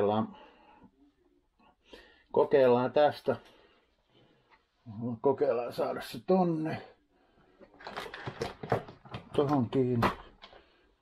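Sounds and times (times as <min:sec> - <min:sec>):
plastic clicks and rattles: 0:07.6 - 0:10.6.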